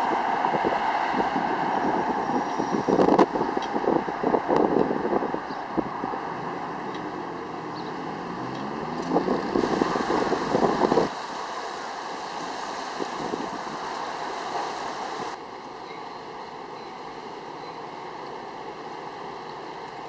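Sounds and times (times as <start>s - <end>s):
wind gusting on microphone: 0.0s - 15.4s.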